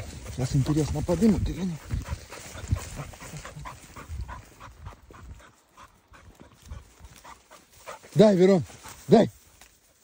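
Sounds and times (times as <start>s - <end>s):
dog panting: 0.5s - 9.1s.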